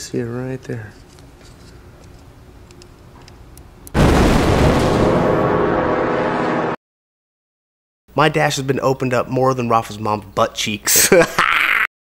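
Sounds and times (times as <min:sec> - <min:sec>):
rumbling explosion sound effect: 0:04.0 - 0:06.8
music: 0:05.0 - 0:06.8.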